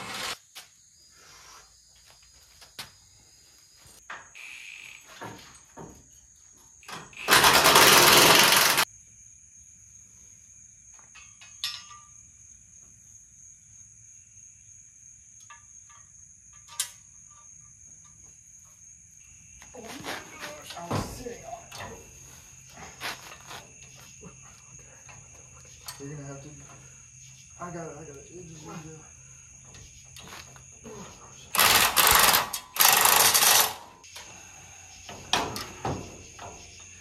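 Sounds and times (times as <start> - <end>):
crickets chirping: 0.1 - 37.0.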